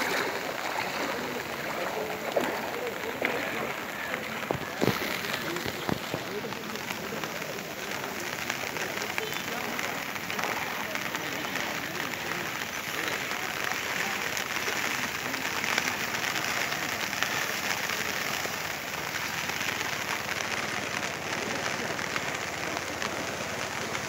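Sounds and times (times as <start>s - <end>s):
heavy rain falling: 0.0s - 24.0s.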